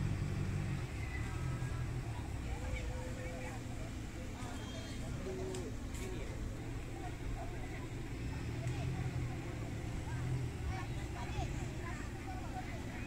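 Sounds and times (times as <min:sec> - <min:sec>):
distant people talking: 0:00.0 - 0:13.0
low outdoor rumble: 0:00.0 - 0:13.0.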